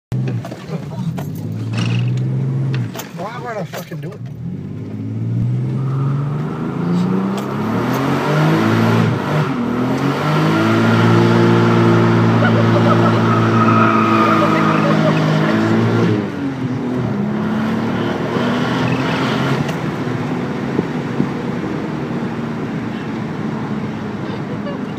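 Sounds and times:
car engine revving hard: 0:04.4 - 0:24.2.

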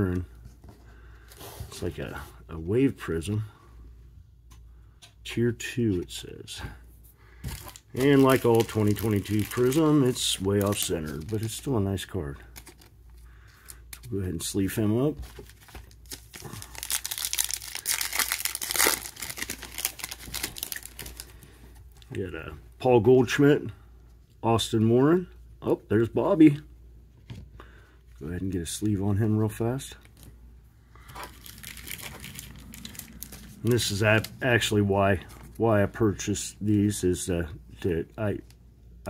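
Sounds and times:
foil wrapper crinkling and tearing: 0:07.4 - 0:11.8, 0:12.5 - 0:14.1, 0:15.3 - 0:21.4, 0:31.0 - 0:35.4.

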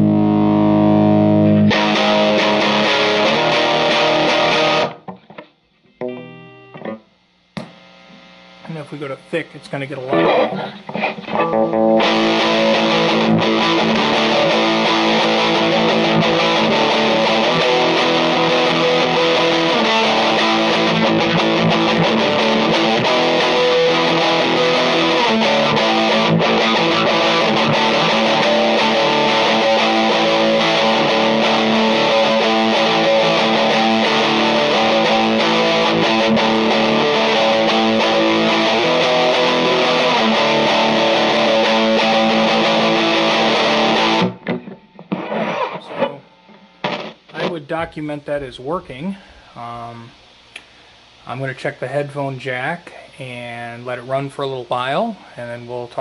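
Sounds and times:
distorted electric guitar chords: 0:00.0 - 0:51.6.

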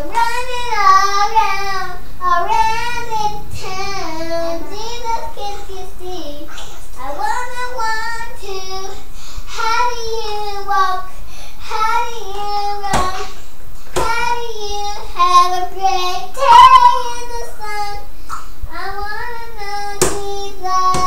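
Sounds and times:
girl singing unaccompanied: 0:00.0 - 0:18.1, 0:18.7 - 0:21.0.

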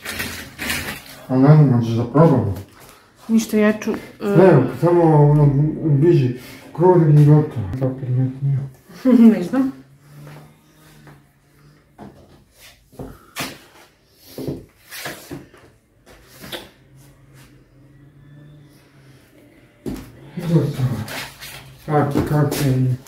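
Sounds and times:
household objects clattering: 0:00.0 - 0:01.4.

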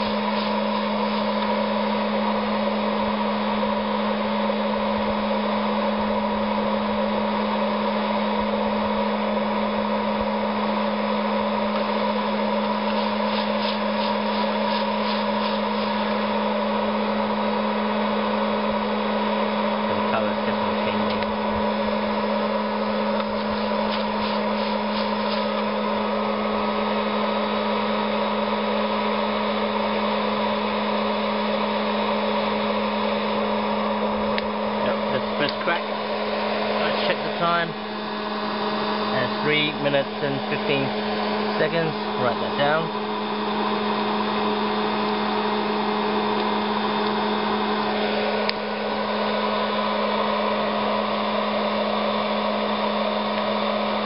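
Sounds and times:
hot-air popper humming: 0:00.0 - 0:54.0.

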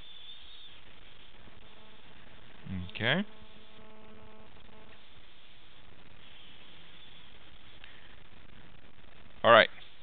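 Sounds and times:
faint high whine: 0:00.0 - 0:10.0
microphone hiss: 0:00.0 - 0:10.0.

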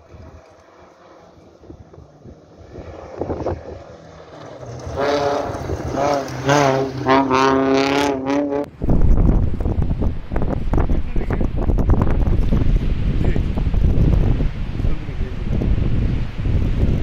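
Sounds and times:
wind buffeting microphone: 0:01.3 - 0:17.0
engine revving hard: 0:02.2 - 0:08.7.

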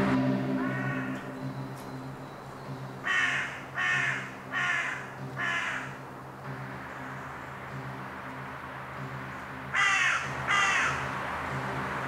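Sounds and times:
low steady drone: 0:00.0 - 0:12.0.

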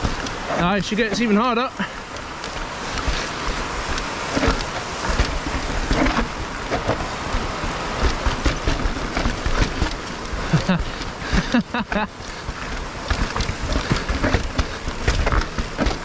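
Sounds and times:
mountain bike rattling over rocks: 0:00.0 - 0:16.0.

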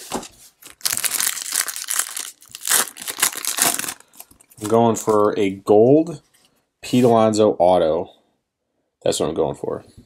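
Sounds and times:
foil wrapper crinkling: 0:00.6 - 0:05.2.

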